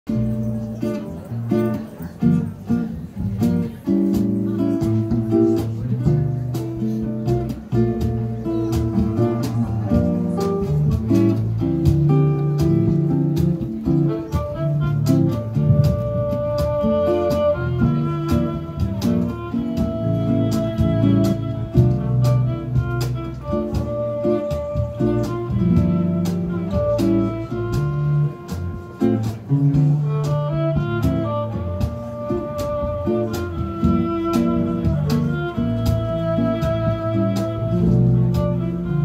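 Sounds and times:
plucked acoustic guitar: 0.0 - 39.0
low bass line: 0.1 - 39.0
violin melody: 0.1 - 39.0.

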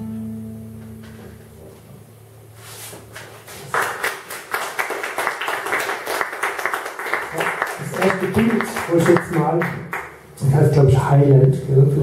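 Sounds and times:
guitar chord: 0.0 - 2.2
audience applauding: 3.5 - 10.2.

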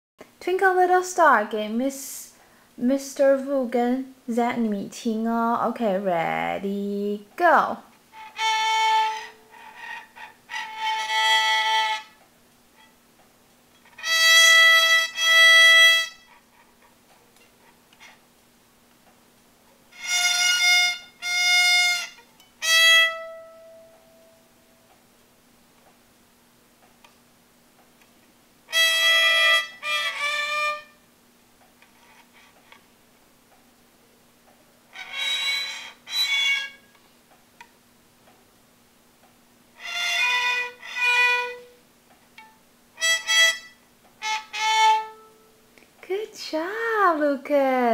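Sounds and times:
violin short bowed notes: 8.2 - 12.2, 43.0 - 45.5.

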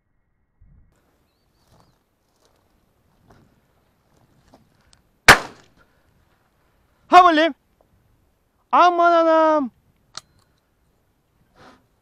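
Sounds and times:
faint rustles and ticks: 1.6 - 5.1
shotgun shot: 5.3 - 5.7.

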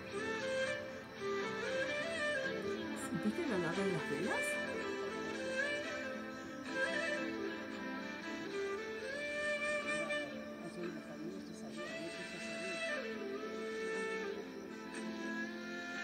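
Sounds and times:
slow music of held notes: 0.0 - 16.0.

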